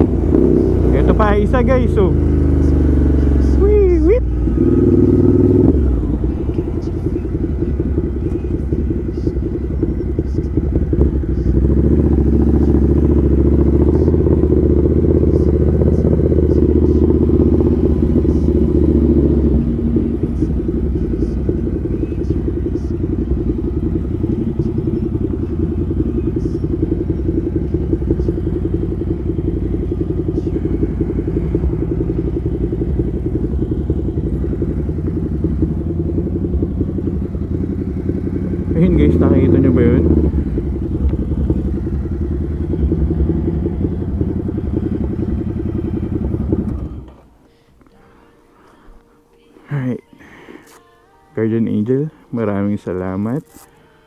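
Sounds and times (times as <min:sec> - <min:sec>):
motorcycle engine running: 0:00.0 - 0:47.4.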